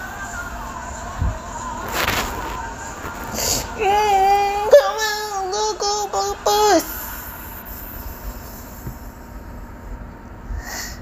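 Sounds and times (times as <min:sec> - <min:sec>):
high-pitched singing voice: 0:00.0 - 0:07.1.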